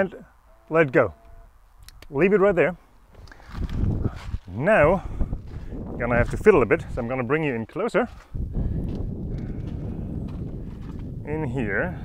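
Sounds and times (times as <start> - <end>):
steady low rumble: 2.9 - 7.5, 8.1 - 12.0
footsteps on paved road: 5.4 - 11.2.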